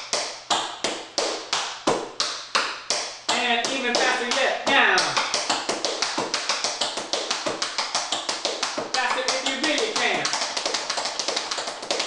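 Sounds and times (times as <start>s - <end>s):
tap shoes on wooden floor: 0.0s - 12.0s.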